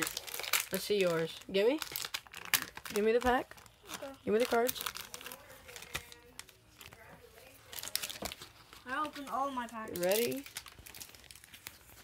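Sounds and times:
foil wrapper crinkling: 0.0s - 12.0s.

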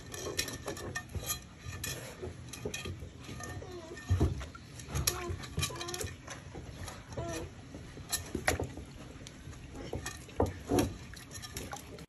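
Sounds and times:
water splashing in metal pot: 8.0s - 12.0s.

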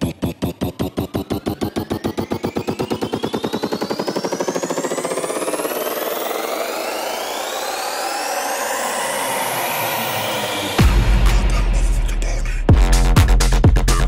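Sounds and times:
rising synth sweeps: 0.0s - 12.2s.

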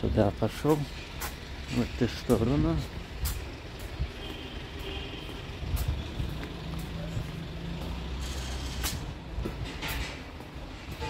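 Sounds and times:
vehicle engine running: 0.4s - 9.6s
footsteps on paving stones: 0.7s - 8.1s.

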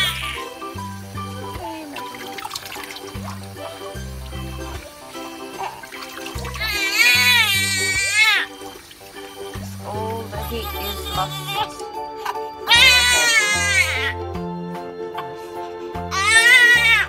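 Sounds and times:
newborn baby crying: 0.0s - 0.6s, 6.5s - 8.6s, 10.4s - 14.2s, 16.1s - 17.0s
background music with bass line: 0.0s - 17.0s
running tap water: 0.0s - 17.0s.

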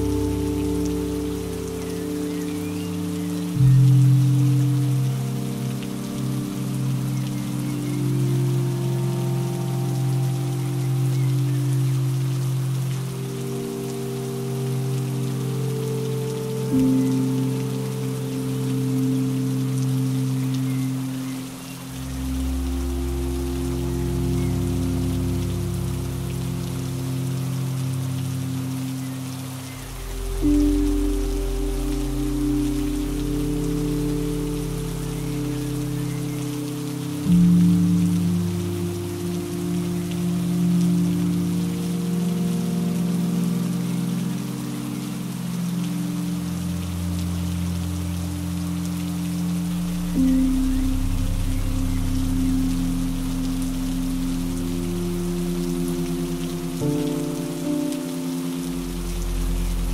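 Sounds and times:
rain hiss: 0.0s - 59.9s
slow relaxing music: 0.0s - 59.9s
deep bass notes: 49.6s - 57.7s.

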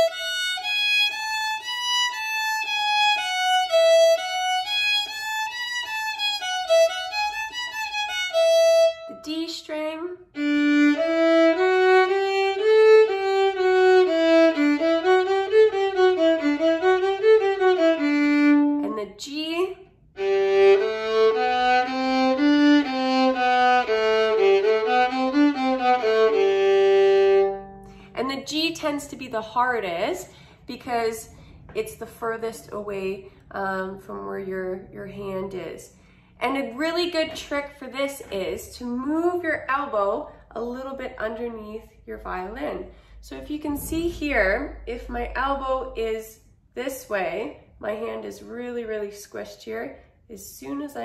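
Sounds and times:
solo violin scale exercise: 0.0s - 32.4s.

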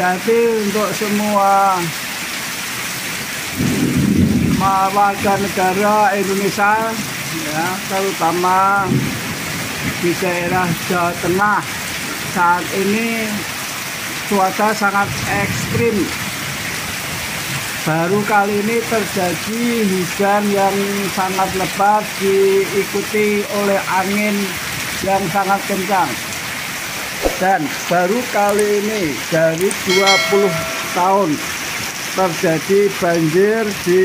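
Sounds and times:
heavy rain: 0.0s - 34.0s.

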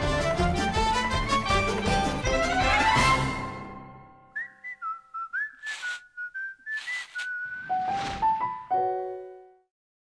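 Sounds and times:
whistled tune: 4.2s - 8.5s
brief hissing noises: 5.6s - 6.1s, 6.7s - 7.4s.

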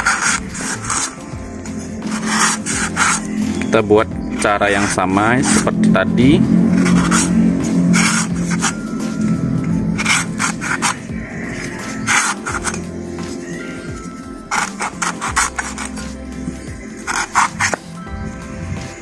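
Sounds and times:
knife scraping coconut husk: 0.0s - 5.7s, 6.7s - 9.2s, 10.0s - 13.9s, 14.5s - 17.9s
background music: 0.0s - 19.0s.

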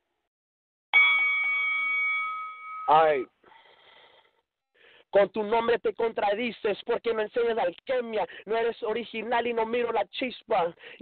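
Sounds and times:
bell ringing: 1.0s - 3.1s.

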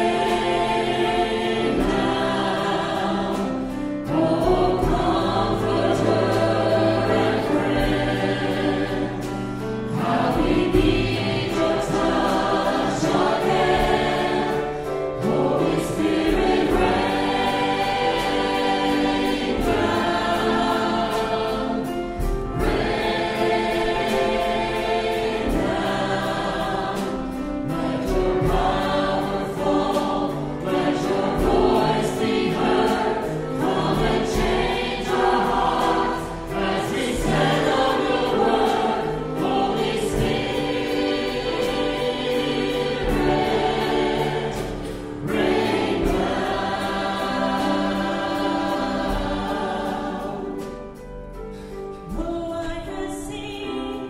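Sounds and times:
choir singing a gospel hymn: 0.0s - 54.0s.

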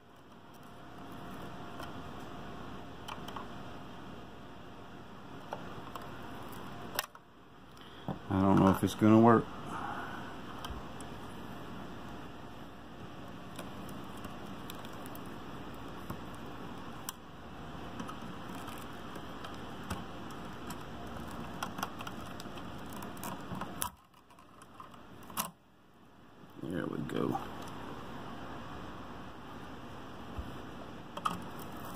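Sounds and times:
probe ticking and scraping plastic: 13.5s - 17.2s, 17.9s - 25.5s.

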